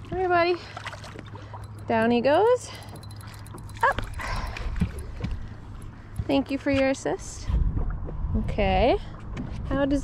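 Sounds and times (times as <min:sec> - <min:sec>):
water splashing: 0:00.0 - 0:06.7.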